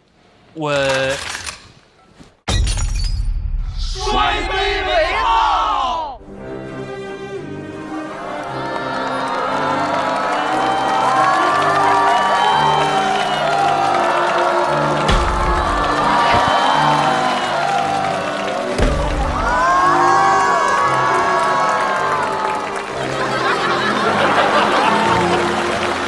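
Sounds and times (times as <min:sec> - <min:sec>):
crowd shouting and whooping: 0:07.9 - 0:26.0.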